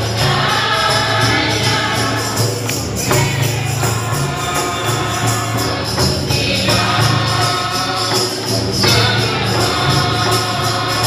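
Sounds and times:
group singing gospel song: 0.0s - 11.0s
hand drum steady beat: 0.0s - 11.0s.

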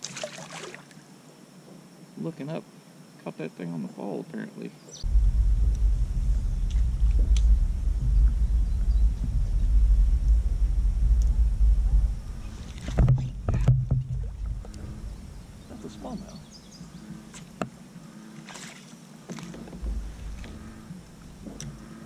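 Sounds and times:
low rumble of kayak on water: 5.0s - 22.0s
sharp knocks: 12.8s - 15.0s.

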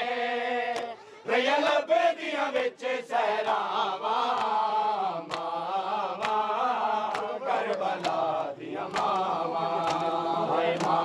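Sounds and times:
men chanting in unison: 0.0s - 11.0s
hands slapping chests: 0.7s - 1.0s, 4.2s - 11.0s.

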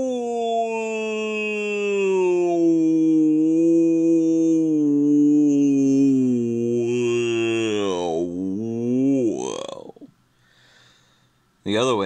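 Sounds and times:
man imitating whale song: 0.0s - 10.1s.

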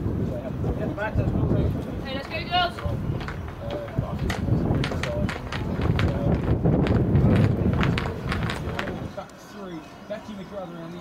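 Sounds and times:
studded boots clacking on walkway: 2.2s - 9.1s.

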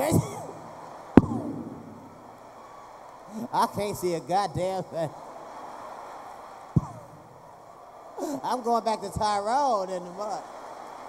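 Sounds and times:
room noise: 0.0s - 2.5s
sharp thump on microphone: 1.2s - 2.2s.

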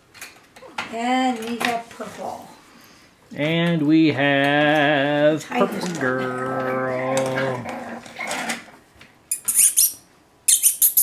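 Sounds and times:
puppy squeaking: 9.3s - 11.0s.

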